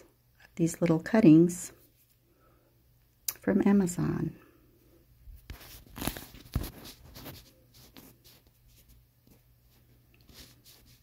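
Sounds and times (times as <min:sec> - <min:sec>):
low steady hum: 0:00.0 - 0:11.0
faint scratchy rustling: 0:05.3 - 0:11.0.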